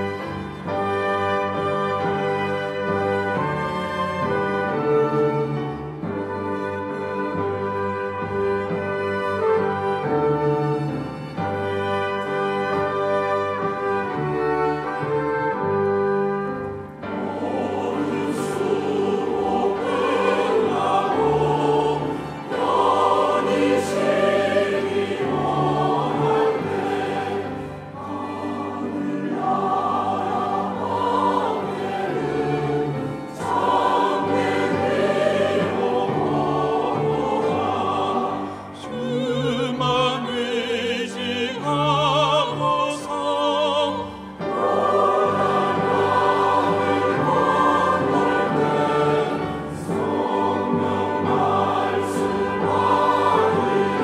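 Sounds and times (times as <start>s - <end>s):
strings and brass playing: 0.0s - 39.1s, 44.1s - 54.0s
choir singing a hymn: 0.0s - 54.0s.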